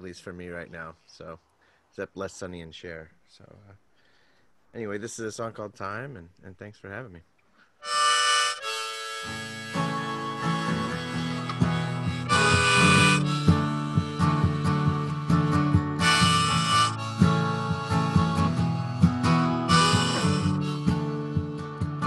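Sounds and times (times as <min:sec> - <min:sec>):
acoustic guitar strumming: 0:07.8 - 0:22.0
harmonica chords: 0:07.8 - 0:22.0.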